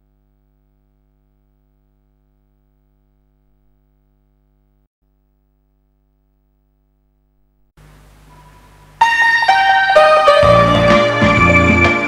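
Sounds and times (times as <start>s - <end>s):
faint low hum: 0.0s - 9.0s
keyboard notes with sharp attacks: 8.4s - 12.0s.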